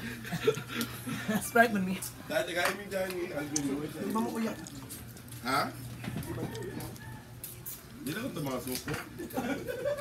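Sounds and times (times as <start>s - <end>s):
people chuckling softly: 0.0s - 1.5s, 9.0s - 10.0s.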